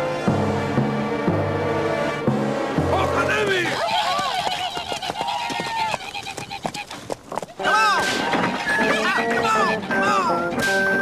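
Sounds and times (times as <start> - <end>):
voices yelling: 2.9 - 10.6
horse hooves: 3.0 - 11.0.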